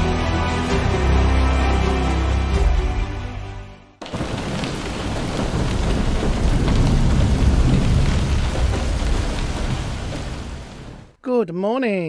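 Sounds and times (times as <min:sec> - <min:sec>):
heavy rain: 0:04.0 - 0:11.2
deep rumble: 0:04.2 - 0:11.1.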